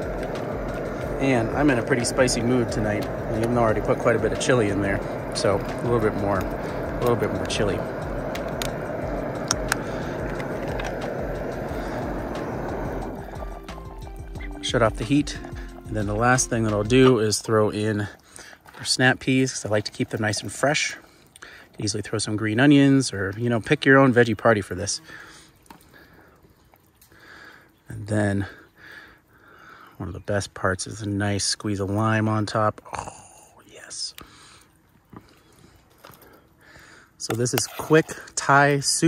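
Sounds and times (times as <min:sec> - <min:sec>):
background music: 0:00.0 - 0:17.2
soup simmering: 0:00.0 - 0:22.2
camp stove burner: 0:00.0 - 0:39.0
man speaking: 0:01.0 - 0:07.9, 0:14.5 - 0:18.2, 0:37.2 - 0:39.0.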